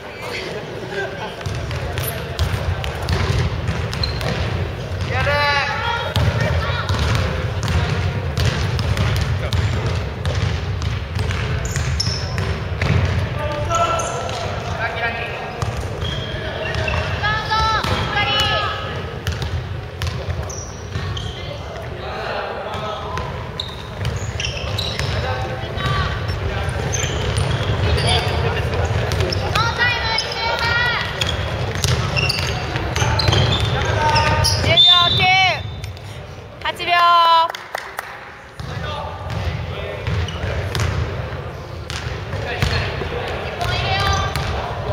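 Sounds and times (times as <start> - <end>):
shoes squeaking on court: 0.0 - 5.3, 11.2 - 14.6, 15.4 - 22.0, 22.8 - 36.2, 38.6 - 41.0, 41.9 - 44.9
basketball bouncing: 1.4 - 5.4, 6.0 - 13.7, 15.6 - 21.2, 30.5 - 35.4, 38.6 - 41.1, 41.9 - 44.7
players calling out: 11.4 - 37.5.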